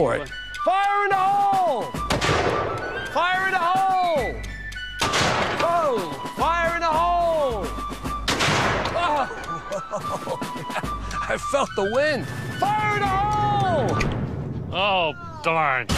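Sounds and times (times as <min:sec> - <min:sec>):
cannon blasts: 0:02.1 - 0:03.0, 0:05.0 - 0:05.7, 0:08.3 - 0:09.0.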